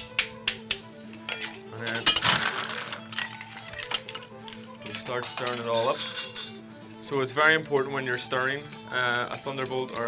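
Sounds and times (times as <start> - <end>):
background music: 0.0 - 10.0
ice cubes clinking into glass: 1.3 - 6.6.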